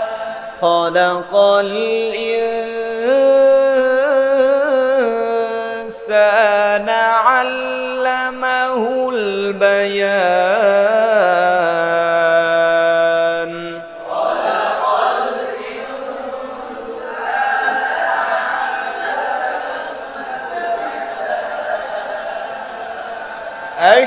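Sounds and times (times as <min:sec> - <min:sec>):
voices chanting in unison: 0:00.0 - 0:24.0
man reciting solo: 0:00.6 - 0:14.2.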